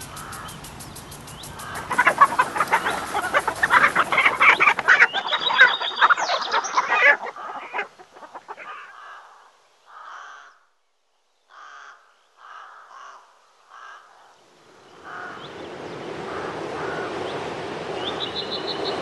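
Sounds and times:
chickens clucking: 0.0s - 8.9s
bird calls: 0.0s - 10.7s, 11.4s - 19.0s.

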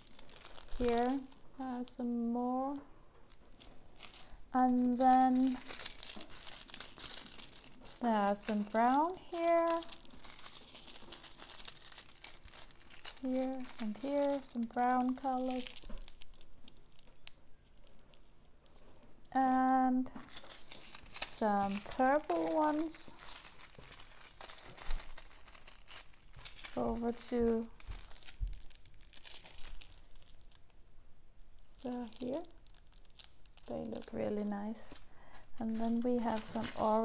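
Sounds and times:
plastic bags crinkling: 0.0s - 37.0s.

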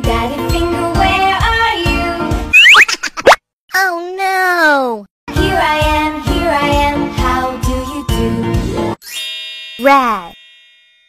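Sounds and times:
cartoon pop rising in pitch: 2.5s - 3.4s
child's drawn-out voice: 3.7s - 5.1s, 9.8s - 10.4s.

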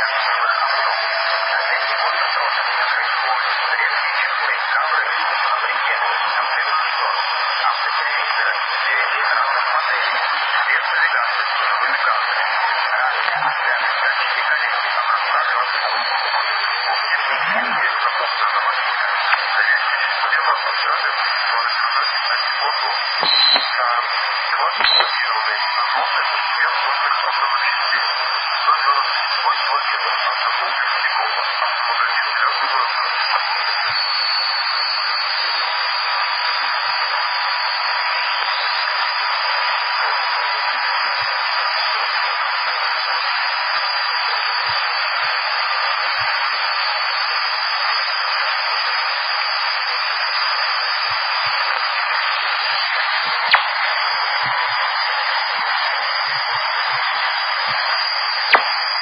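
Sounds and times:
garbled voices over radio: 0.0s - 34.0s, 48.4s - 59.0s
radio hiss and static: 0.0s - 59.0s
thin steady whistle: 15.2s - 18.7s, 19.3s - 59.0s.

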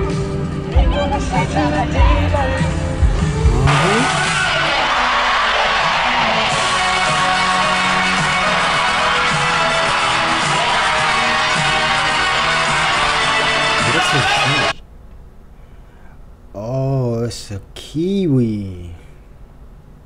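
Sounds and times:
crowd noise: 0.6s - 14.8s.

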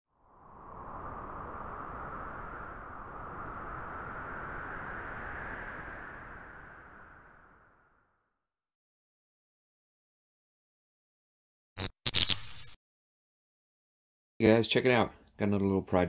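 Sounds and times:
whoosh rising in pitch: 0.2s - 8.3s.

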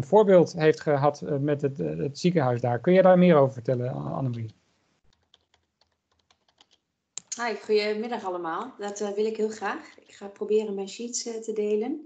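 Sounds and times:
keyboard typing clicks: 5.1s - 7.3s.

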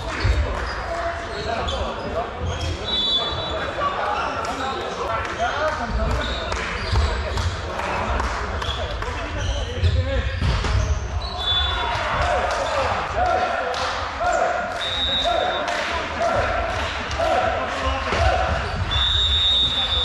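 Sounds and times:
indistinct voices: 0.0s - 20.0s.

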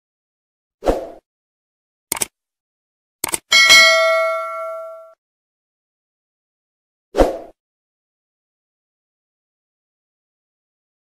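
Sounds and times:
double clicks: 2.1s - 2.3s, 3.2s - 3.5s
notification bell ding: 3.5s - 5.2s.

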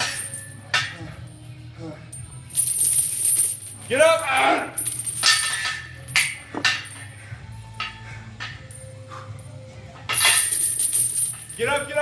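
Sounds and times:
steel chains clinking on floor: 0.0s - 12.0s.

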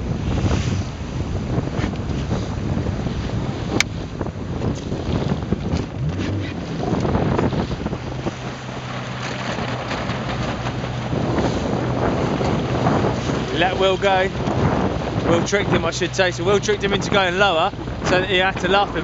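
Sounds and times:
low engine hum: 0.0s - 19.0s
water splashing around boat: 0.0s - 19.0s
wind buffeting microphone: 0.0s - 19.0s.

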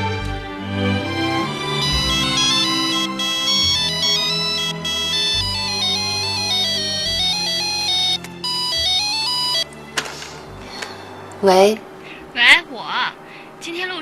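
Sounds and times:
phone polyphonic ringtone: 1.4s - 9.8s.

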